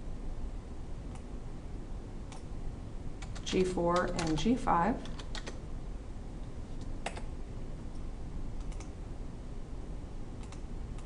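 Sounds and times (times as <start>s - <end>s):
faint low hum: 0.0s - 11.0s
keyboard keystrokes: 3.2s - 5.6s, 7.0s - 7.3s, 8.6s - 8.9s.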